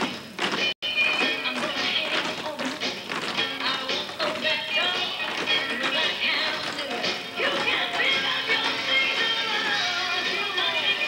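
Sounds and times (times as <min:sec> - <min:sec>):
dance music: 0:00.0 - 0:11.0
tap shoes clicking on stage: 0:00.0 - 0:11.0.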